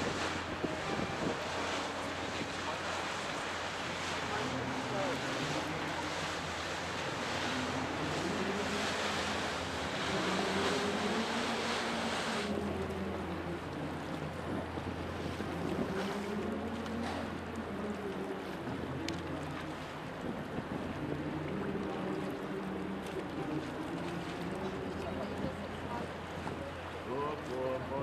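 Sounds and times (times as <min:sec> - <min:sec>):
wind hiss on microphone: 0:00.0 - 0:27.2
boat engines droning: 0:00.0 - 0:28.0
water splashing: 0:00.0 - 0:28.0.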